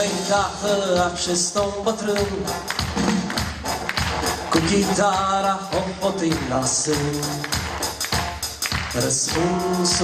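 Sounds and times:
man singing: 0.0s - 2.7s, 4.5s - 7.7s, 8.8s - 10.0s.

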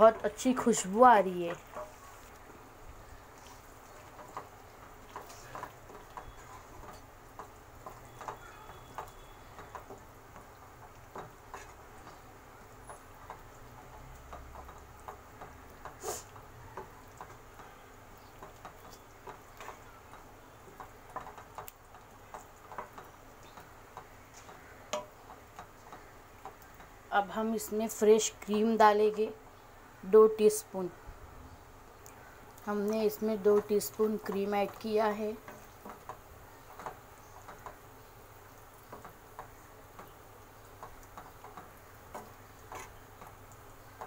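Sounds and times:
spatula tapping and scraping pan: 1.4s - 2.4s, 3.4s - 12.3s, 12.9s - 27.0s, 33.1s - 37.9s, 40.8s - 44.0s.

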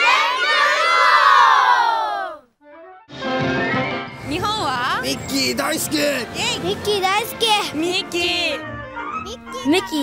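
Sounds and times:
children shouting a cheer: 0.0s - 2.4s.

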